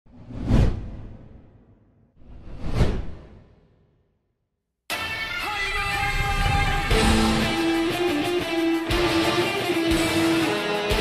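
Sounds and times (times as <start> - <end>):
whoosh sound effects: 0.1 - 1.6, 2.2 - 3.8.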